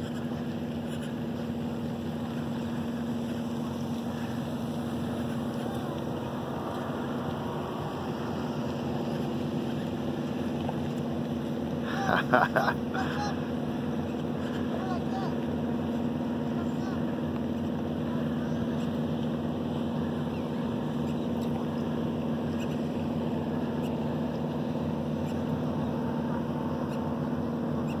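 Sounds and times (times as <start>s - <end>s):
engine running steadily: 0.0s - 28.0s.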